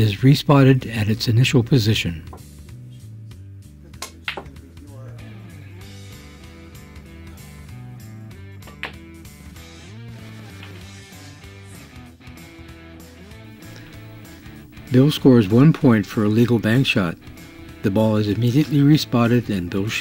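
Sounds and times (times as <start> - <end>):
pool balls clicking: 4.0 - 4.6, 8.6 - 9.1, 10.4 - 10.9
guitar music: 5.0 - 20.0.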